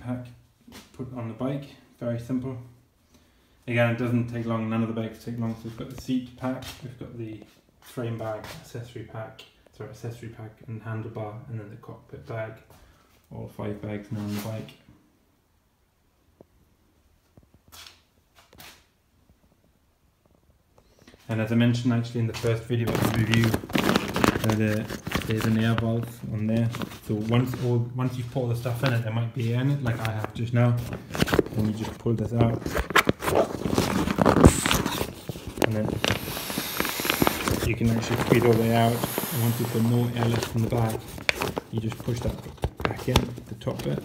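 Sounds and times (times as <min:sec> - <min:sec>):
fabric rustling and scraping: 0:22.4 - 0:44.0.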